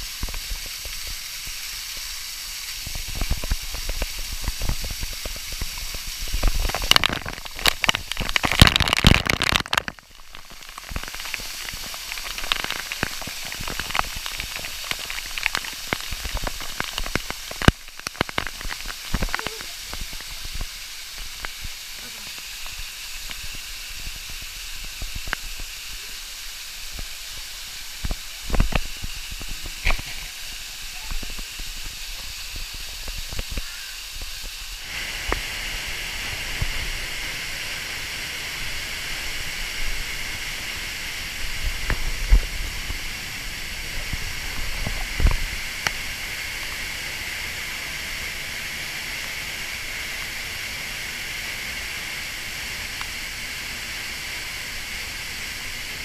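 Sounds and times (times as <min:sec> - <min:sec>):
waterfall rushing: 0:02.8 - 0:56.0.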